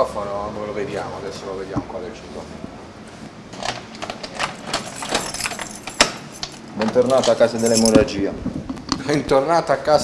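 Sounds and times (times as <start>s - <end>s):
keys jangling: 4.4s - 8.0s.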